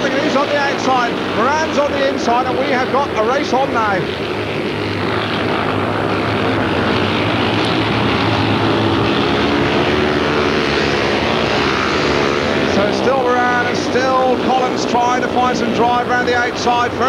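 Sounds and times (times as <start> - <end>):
racing motorcycle engines droning: 0.0 - 17.0.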